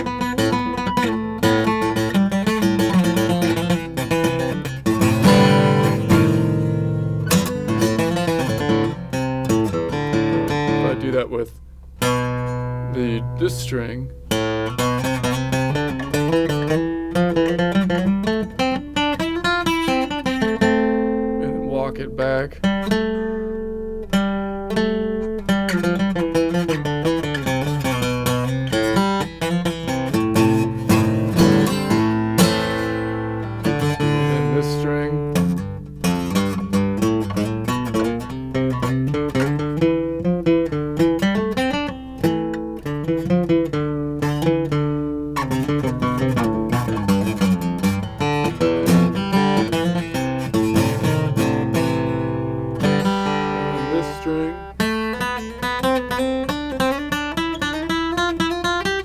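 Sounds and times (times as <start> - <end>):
acoustic guitar scale: 0.0 - 59.0.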